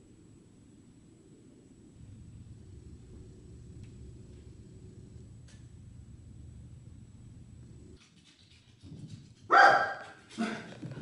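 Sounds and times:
dog barking: 9.5 - 10.6.

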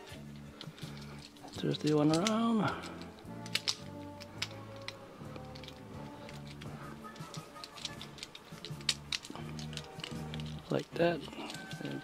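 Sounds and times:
background music: 0.0 - 12.0
plastic toy parts clicking: 0.2 - 12.0.

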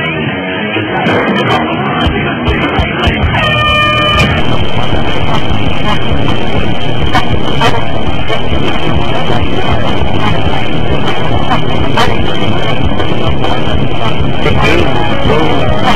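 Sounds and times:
harsh distorted noise: 0.0 - 15.9.

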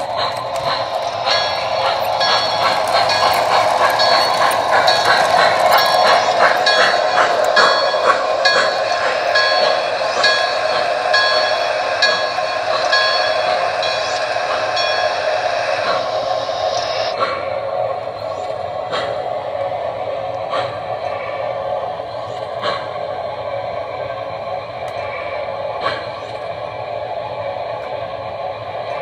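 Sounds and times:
model train rolling on track: 0.0 - 29.0.

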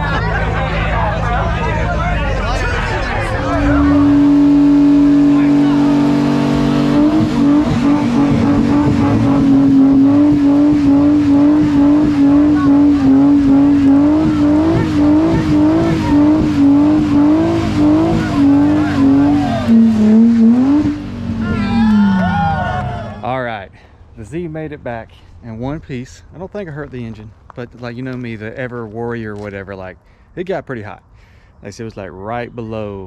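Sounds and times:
car engine at high revs: 0.0 - 23.3.

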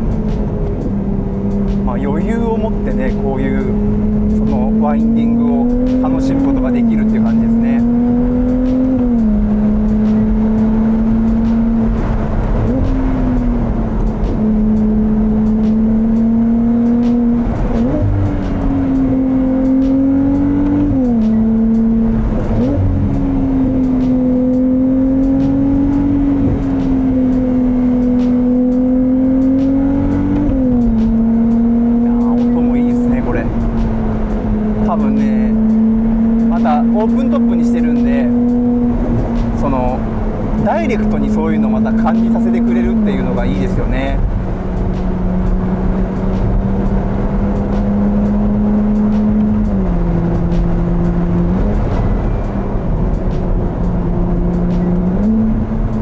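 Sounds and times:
car engine running: 0.0 - 56.0
road and wind noise: 0.0 - 56.0.

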